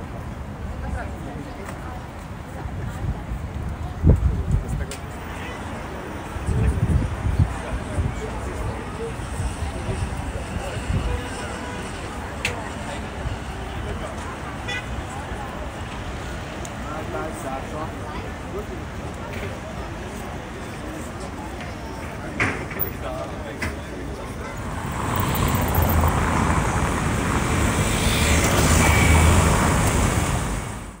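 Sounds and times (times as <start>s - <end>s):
distant city traffic: 4.9s - 31.0s.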